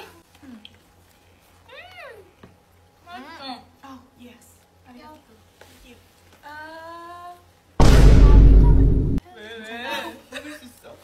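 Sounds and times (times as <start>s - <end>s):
low steady hum: 7.8s - 9.2s.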